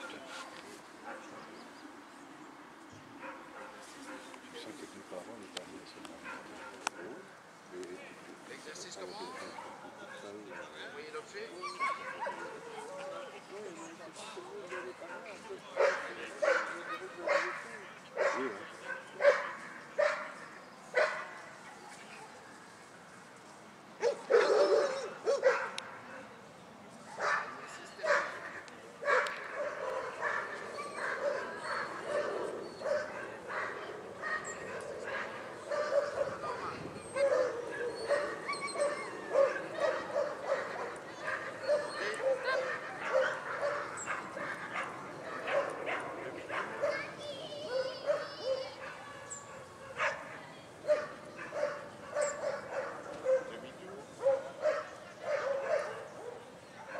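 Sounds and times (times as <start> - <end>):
dog barking: 14.7 - 17.6, 18.2 - 20.4, 21.0 - 21.4, 24.0 - 26.2, 27.1 - 28.4, 29.0 - 36.6, 37.2 - 47.1, 47.7 - 53.6, 54.2 - 56.9.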